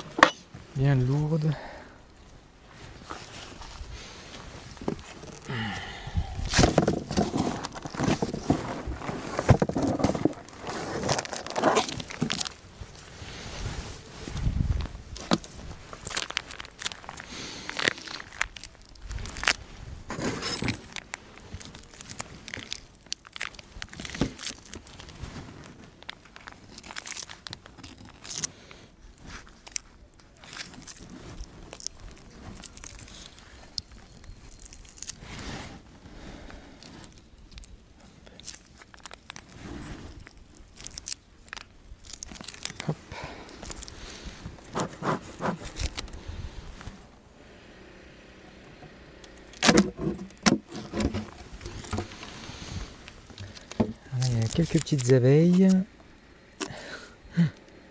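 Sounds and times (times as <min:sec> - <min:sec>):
plastic wrapping crackling: 0:06.5 - 0:13.1, 0:14.0 - 0:35.4, 0:36.8 - 0:47.1, 0:49.3 - 0:55.9.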